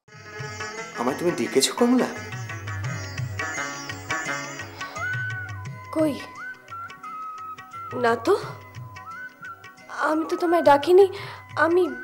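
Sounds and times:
woman speaking: 9.9s - 12.0s.

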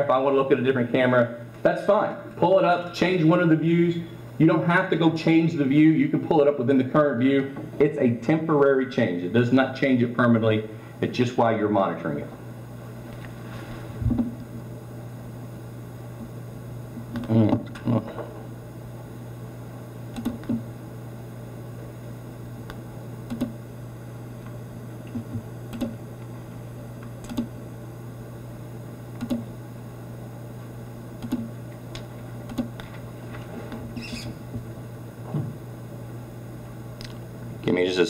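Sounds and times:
low electrical hum: 0.0s - 38.0s.

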